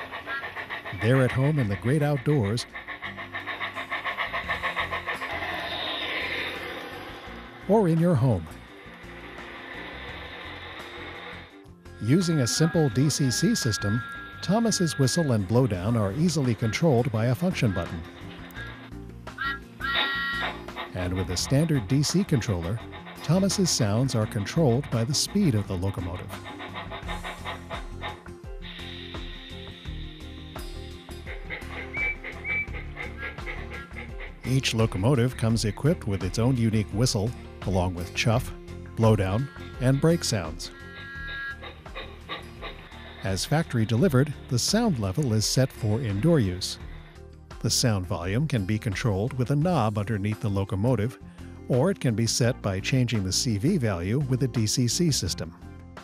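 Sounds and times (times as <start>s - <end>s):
toy train steam chuff: 0.0s - 47.9s
music: 0.0s - 56.0s.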